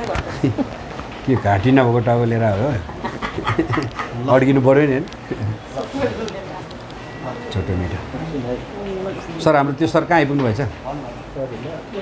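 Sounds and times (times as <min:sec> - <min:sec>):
person laughing: 0:02.9 - 0:04.3.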